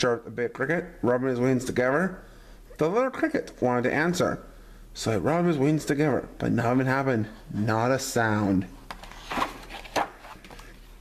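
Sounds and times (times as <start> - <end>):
paper page turning: 8.9 - 10.8
paper sliding: 9.0 - 10.8.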